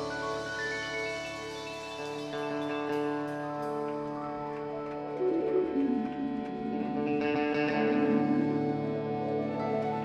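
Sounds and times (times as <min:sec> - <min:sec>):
live band playing instrumental: 0:00.0 - 0:10.0.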